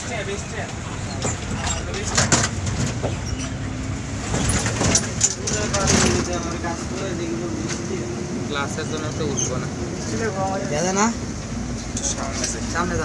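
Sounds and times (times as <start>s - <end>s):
bus engine and road rumble: 0.0s - 13.0s
passengers talking: 0.0s - 13.0s
rattles: 0.9s - 7.9s.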